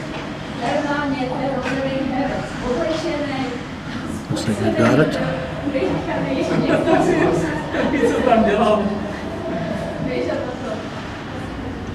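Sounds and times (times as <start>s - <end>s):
ice rink background noise: 0.0s - 11.9s.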